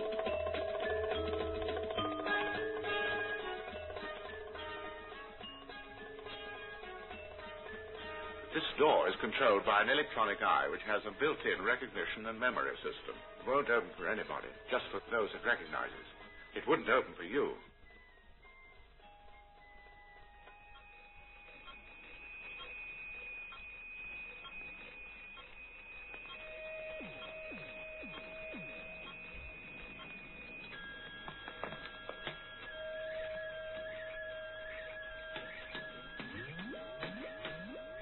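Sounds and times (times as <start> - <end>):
steady pure electronic tones: 0.0 - 38.0.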